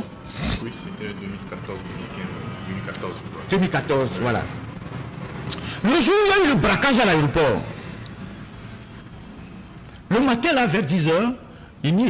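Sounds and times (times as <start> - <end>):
low room tone hum: 0.0 - 12.0.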